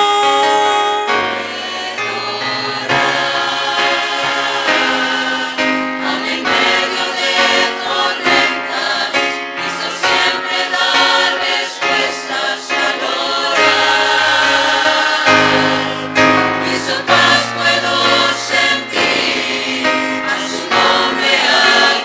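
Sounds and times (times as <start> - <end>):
choir singing a hymn: 0.0 - 22.0.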